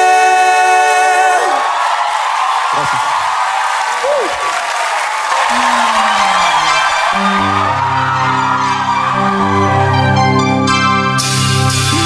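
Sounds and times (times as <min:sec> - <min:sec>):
shouted whoops: 0:00.0 - 0:10.0
crowd cheering and applauding: 0:00.0 - 0:12.0.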